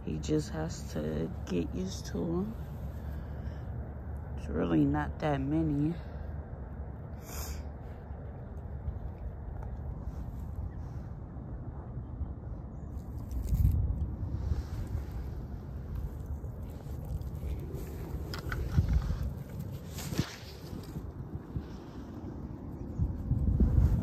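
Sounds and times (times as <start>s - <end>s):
wind buffeting microphone: 7.7s - 24.0s.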